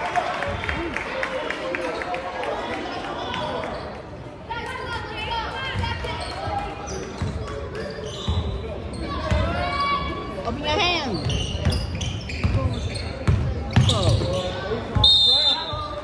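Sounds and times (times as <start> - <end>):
spectators' voices: 0.0 - 16.0
sneaker squeaks: 3.6 - 4.0, 5.8 - 10.1, 10.7 - 16.0.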